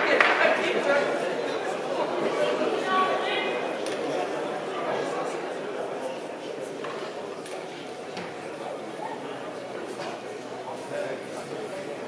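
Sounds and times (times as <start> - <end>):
echoing chatter of many voices: 0.0 - 12.0.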